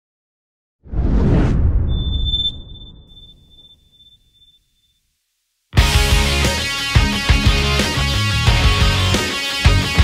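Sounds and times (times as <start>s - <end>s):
low rumble: 0.9s - 3.8s
high steady ringing tone: 1.9s - 5.0s
rock band playing: 5.8s - 10.0s.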